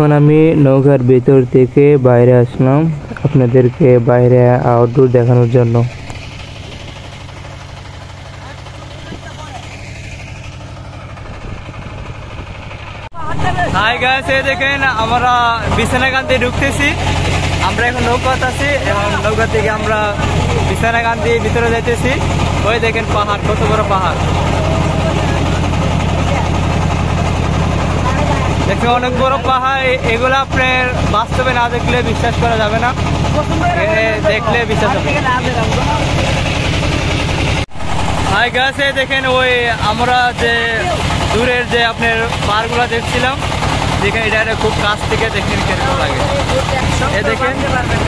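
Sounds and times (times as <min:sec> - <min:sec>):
boat engine running: 0:00.0 - 0:48.0.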